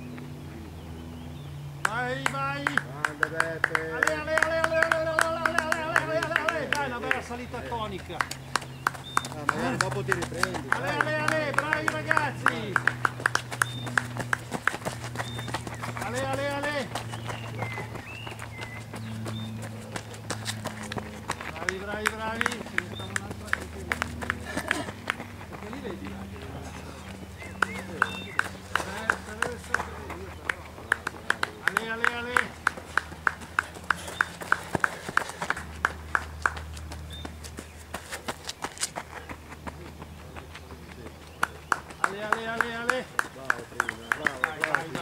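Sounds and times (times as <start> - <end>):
running footsteps on gravel: 1.9 - 45.0.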